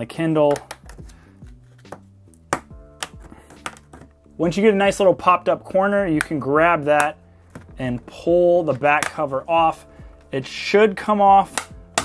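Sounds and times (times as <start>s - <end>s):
soft background music: 0.0s - 12.0s
plastic clips clicking: 0.5s - 1.2s.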